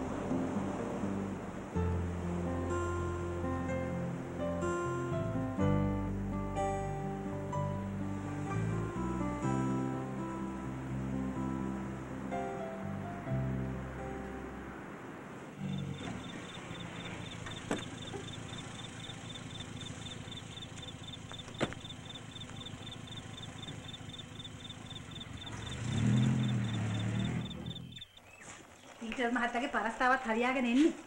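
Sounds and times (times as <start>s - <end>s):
film music: 0.0s - 28.0s
crickets chirping: 14.8s - 29.0s
car engine idling: 15.5s - 28.3s
car door knocks: 17.5s - 18.1s, 21.4s - 21.8s.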